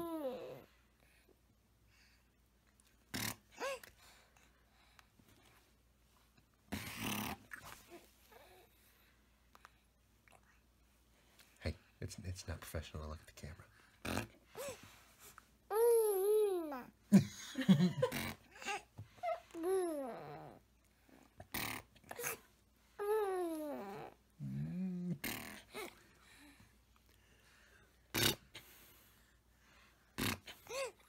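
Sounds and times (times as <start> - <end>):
baby cooing: 15.7 - 16.9, 18.5 - 20.6, 23.0 - 26.0
infant growling: 19.6 - 20.6, 23.0 - 26.0.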